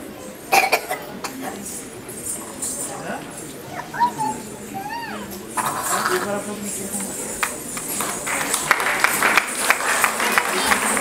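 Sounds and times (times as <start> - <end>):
person coughing: 0.6 - 1.1.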